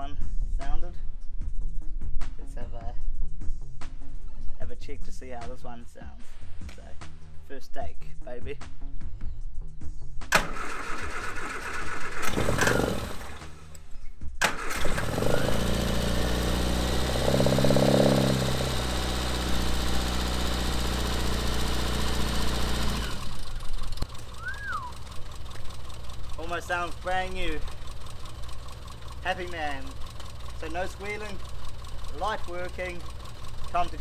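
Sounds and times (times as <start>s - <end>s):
car engine starting and idling: 10.3s - 34.0s.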